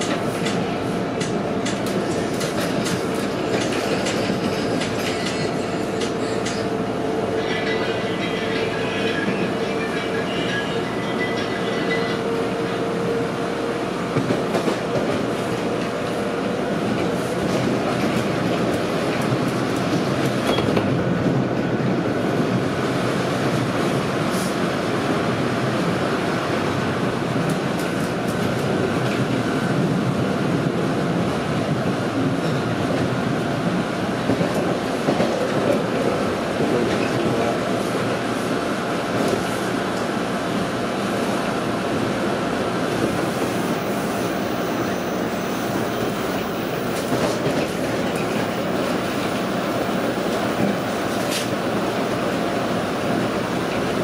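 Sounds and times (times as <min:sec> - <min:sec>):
rumble of wheels on rail: 0:00.0 - 0:54.0.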